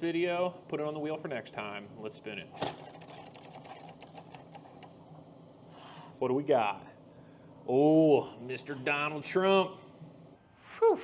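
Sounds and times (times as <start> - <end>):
prize wheel clicking: 2.6 - 4.9.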